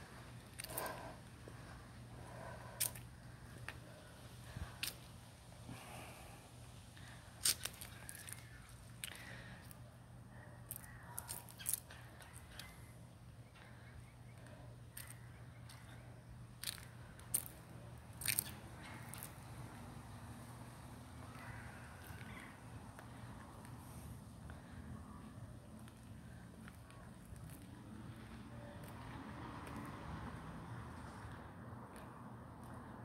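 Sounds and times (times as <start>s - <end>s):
low steady hum: 0.0s - 28.9s.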